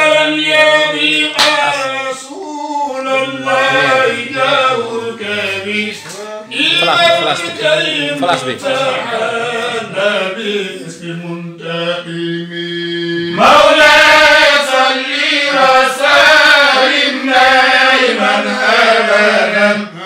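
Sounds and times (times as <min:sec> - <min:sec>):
man chanting: 0:00.0 - 0:13.3.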